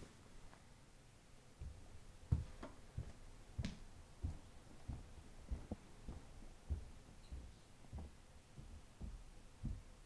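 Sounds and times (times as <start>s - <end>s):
soft muffled thuds: 1.6s - 10.0s.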